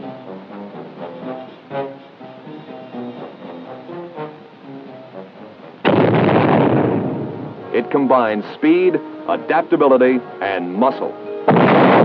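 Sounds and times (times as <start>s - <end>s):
film soundtrack music: 0.0s - 12.0s
loud explosion: 5.8s - 7.6s, 11.5s - 12.0s.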